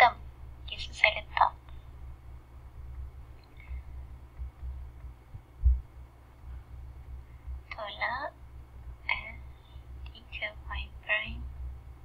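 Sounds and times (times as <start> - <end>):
steady low hum: 0.0 - 12.0
soft low thumps: 2.1 - 7.7.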